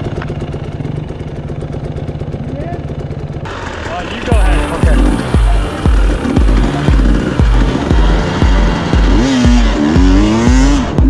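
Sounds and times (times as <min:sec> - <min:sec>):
dirt bike engine idling: 0:00.0 - 0:11.0.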